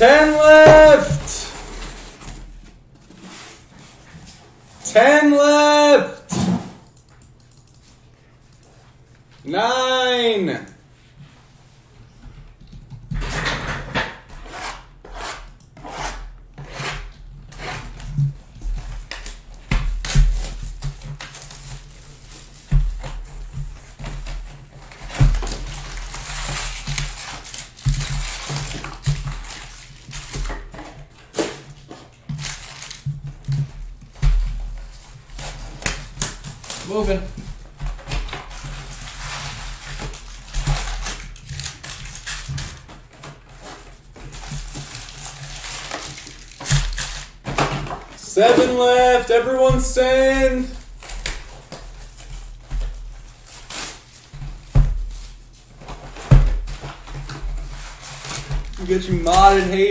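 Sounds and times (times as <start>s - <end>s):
foil and cardboard crinkling: 19.1s - 33.3s, 34.8s - 47.7s, 48.5s - 59.9s.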